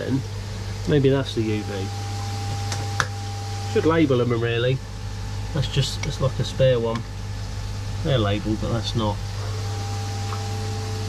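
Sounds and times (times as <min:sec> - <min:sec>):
electrical hum of pond filter: 0:00.0 - 0:11.0
high steady whine: 0:00.0 - 0:11.0.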